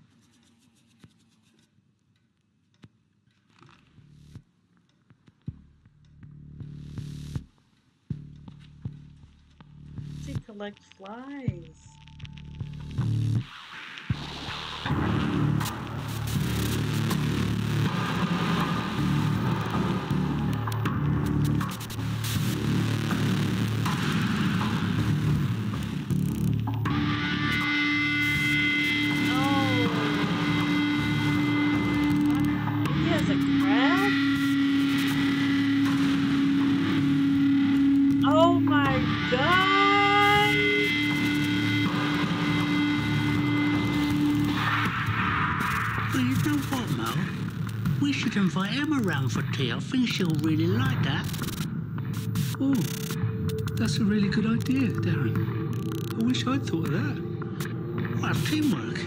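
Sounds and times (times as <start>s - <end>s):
eerie horror film score: 8.1s - 59.0s.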